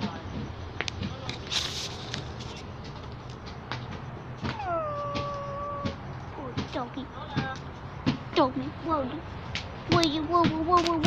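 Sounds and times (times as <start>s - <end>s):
dog whimpering: 4.4s - 6.0s
dog howling: 4.5s - 6.0s.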